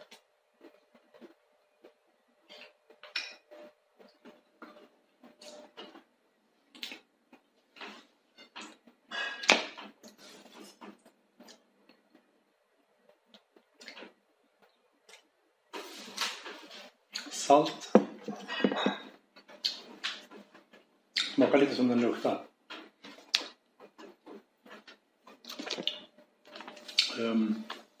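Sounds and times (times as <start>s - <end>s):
lip smacks and mouth clicks: 6.7s - 8.0s, 19.4s - 21.4s, 23.0s - 26.1s, 26.8s - 27.2s
rustling: 13.1s - 17.0s.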